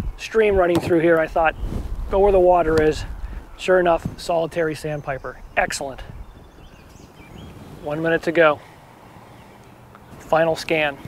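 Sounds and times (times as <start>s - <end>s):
faint distant bird calls: 0.0s - 11.0s.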